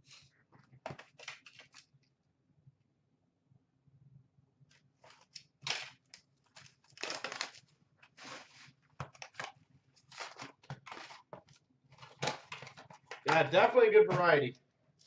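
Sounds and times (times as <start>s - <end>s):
plastic wrap tearing and crinkling: 1.0s - 1.9s, 5.0s - 11.3s.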